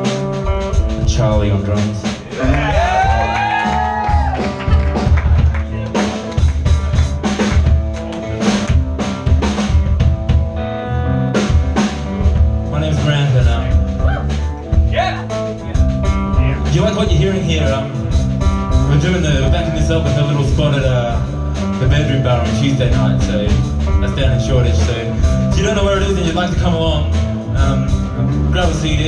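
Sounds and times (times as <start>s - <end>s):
drum kit: 0.0s - 29.0s
electric bass: 0.0s - 29.0s.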